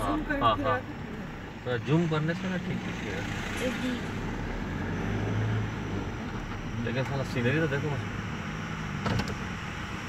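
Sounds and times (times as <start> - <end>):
car running noise: 0.0 - 10.0.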